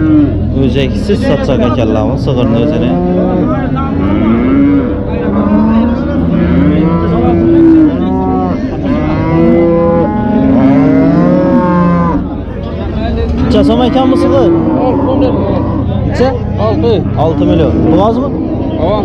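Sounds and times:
cattle mooing: 0:00.0 - 0:00.6, 0:01.2 - 0:12.5, 0:13.2 - 0:19.0.

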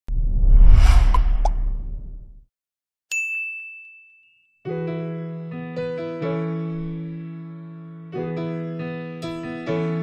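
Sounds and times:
whoosh: 0:00.1 - 0:02.4.

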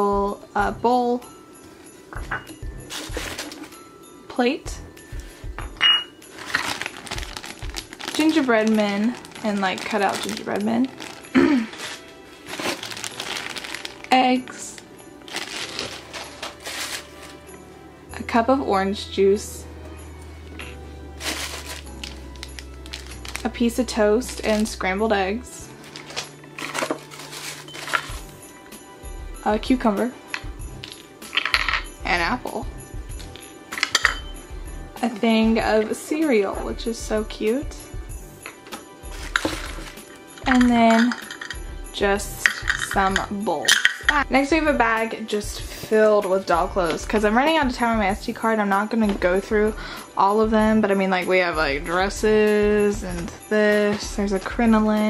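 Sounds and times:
hands rummaging through tissue: 0:02.8 - 0:03.8, 0:06.3 - 0:17.5, 0:21.2 - 0:25.0, 0:25.6 - 0:28.5, 0:38.6 - 0:41.6
small hard pieces clinking: 0:05.8 - 0:14.1, 0:15.3 - 0:17.3, 0:25.8 - 0:28.3, 0:30.3 - 0:31.9, 0:33.3 - 0:34.2, 0:38.7 - 0:41.6, 0:42.4 - 0:44.2.

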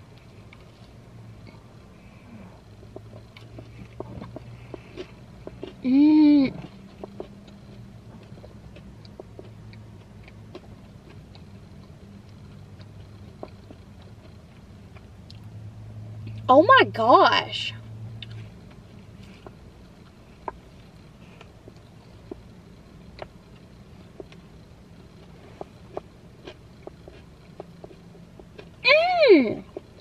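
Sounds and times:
person chewing crunchy cookie: 0:00.0 - 0:15.5, 0:18.2 - 0:28.8, 0:29.6 - 0:30.0
low steady hum: 0:00.0 - 0:30.0
person humming mmm: 0:05.8 - 0:06.6.

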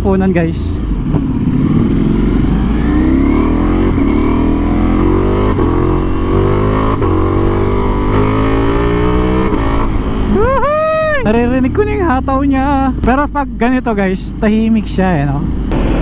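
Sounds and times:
motorcycle engine accelerating: 0:00.8 - 0:13.1.

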